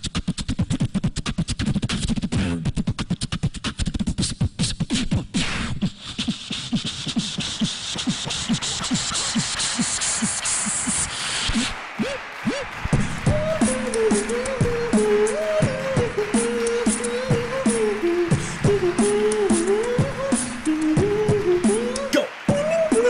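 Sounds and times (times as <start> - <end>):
beatboxing: 0.0 - 23.0
hummed melody: 13.1 - 23.0.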